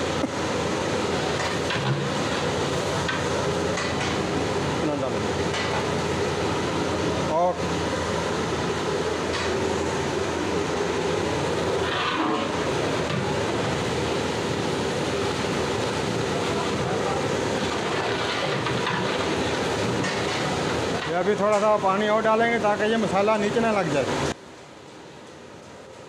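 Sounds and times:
pot of gravy boiling hard: 0.0 - 26.0.

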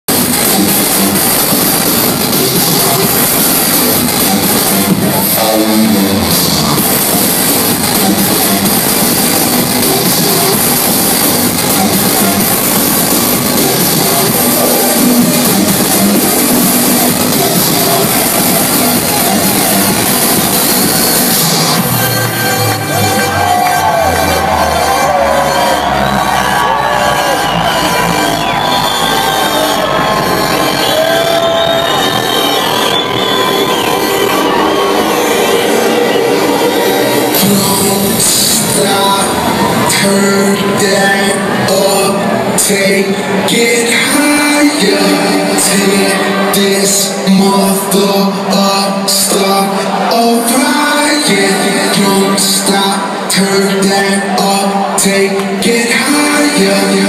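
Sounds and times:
loud electronic dance music: 0.0 - 57.0.

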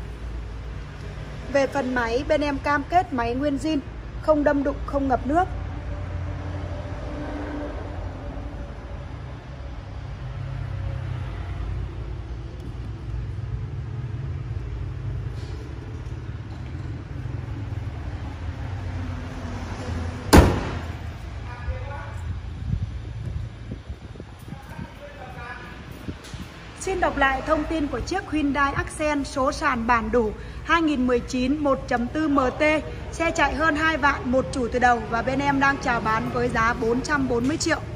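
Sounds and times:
car bonnet slamming: 20.3 - 21.0.

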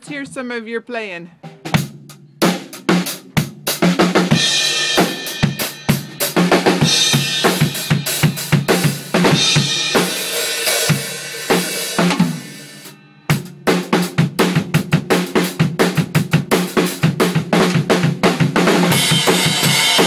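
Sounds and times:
drum kit beat: 0.0 - 20.0.

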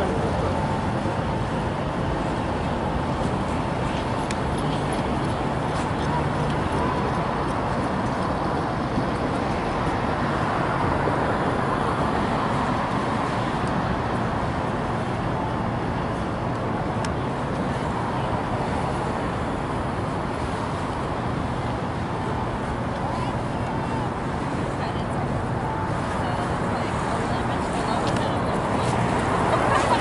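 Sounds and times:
hubbub of people walking: 0.0 - 30.0
road traffic: 0.0 - 30.0.

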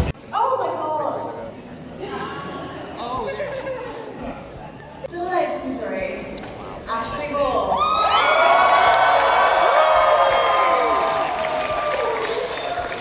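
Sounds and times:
audience cheering and whooping: 7.7 - 13.0.

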